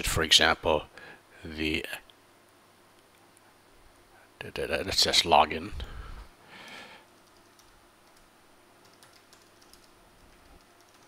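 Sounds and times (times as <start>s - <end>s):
typing on computer keyboard: 7.2s - 11.0s.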